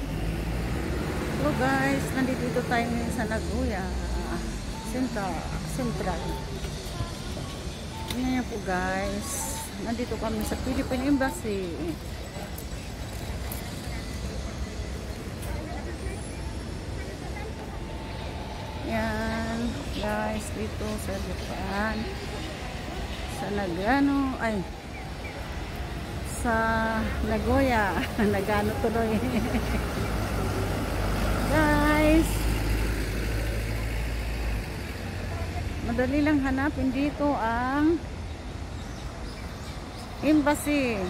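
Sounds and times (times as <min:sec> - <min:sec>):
indistinct voices of passers-by: 0:00.0 - 0:41.0
road noise: 0:00.0 - 0:41.0
traffic rumble: 0:00.0 - 0:41.0.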